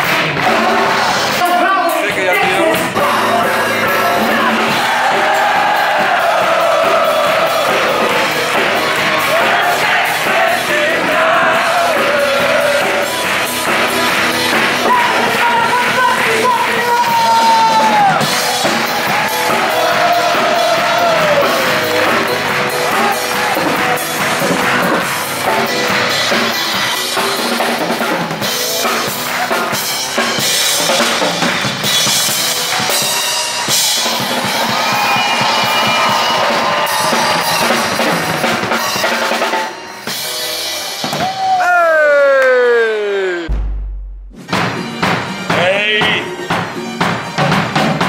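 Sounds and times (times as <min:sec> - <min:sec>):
piano: 0:00.0 - 0:42.7
audience in hall: 0:00.0 - 0:48.0
drum kit: 0:00.0 - 0:48.0.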